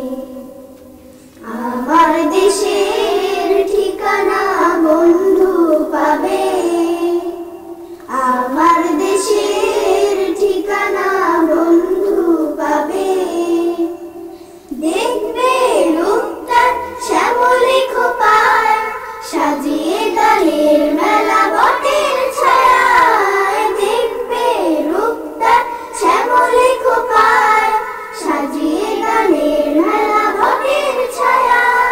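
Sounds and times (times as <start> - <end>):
children singing together: 0.0 - 31.9.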